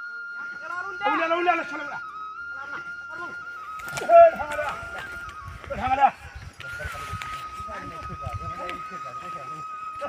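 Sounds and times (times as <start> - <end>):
men talking: 0.3 - 10.0
men calling out: 0.4 - 6.7.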